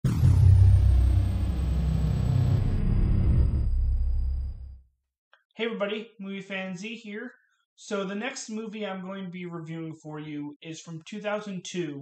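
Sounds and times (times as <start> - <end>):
deep bass rumble: 0.0 - 4.8
high falling sweep: 0.0 - 4.8.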